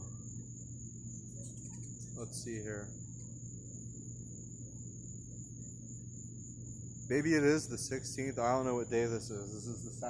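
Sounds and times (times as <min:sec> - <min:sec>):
continuous high-pitched tone: 0:00.0 - 0:10.0
low hum: 0:00.0 - 0:10.0.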